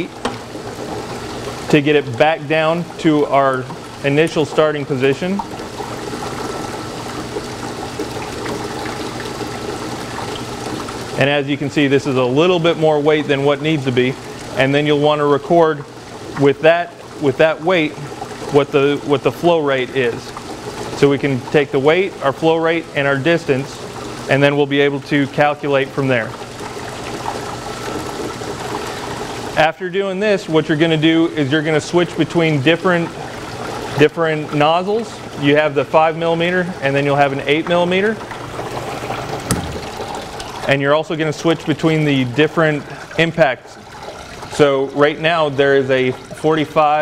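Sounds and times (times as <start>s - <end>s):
pump humming: 0.0s - 47.0s
water jet rushing: 0.0s - 47.0s.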